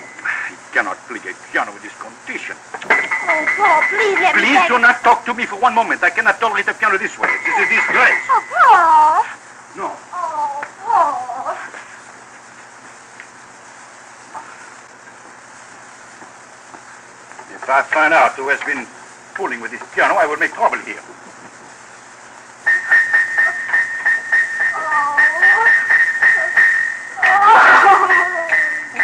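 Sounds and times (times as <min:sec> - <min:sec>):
steady high tone: 0:00.0 - 0:00.3, 0:02.9 - 0:05.2, 0:07.2 - 0:09.3, 0:22.6 - 0:29.0
old record surface hiss: 0:00.0 - 0:29.0
wordless voices: 0:03.2 - 0:11.9.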